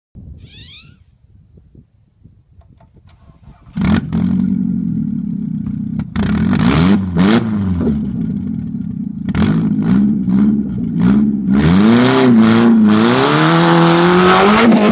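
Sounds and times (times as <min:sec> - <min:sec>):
car engine revving hard: 0:03.5 - 0:04.9, 0:06.1 - 0:08.2, 0:09.3 - 0:14.9.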